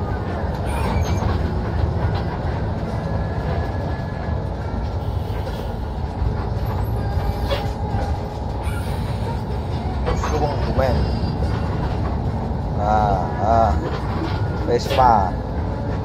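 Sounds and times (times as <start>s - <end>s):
bus engine running: 0.0s - 16.0s.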